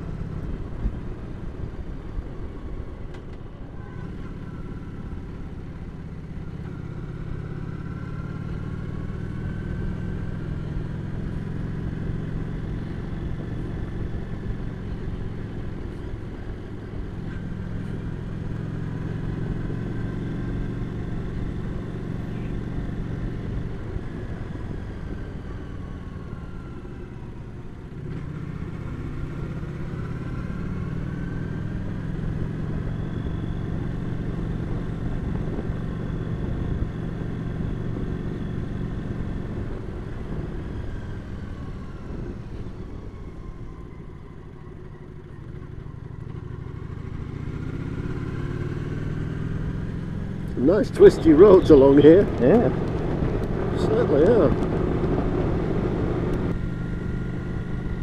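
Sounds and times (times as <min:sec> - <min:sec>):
motorcycle engine running: 0:43.7 - 0:58.0.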